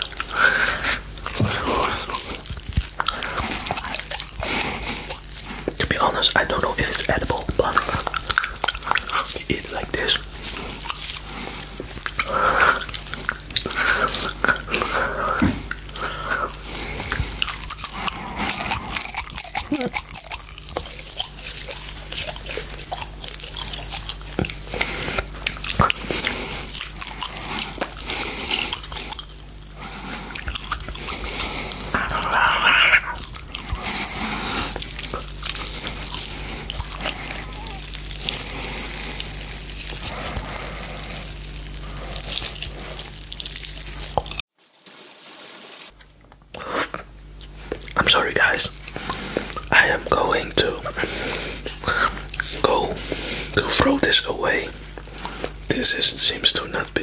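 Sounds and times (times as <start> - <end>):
chewing gummy candy: 0.0 - 44.4, 46.1 - 57.0.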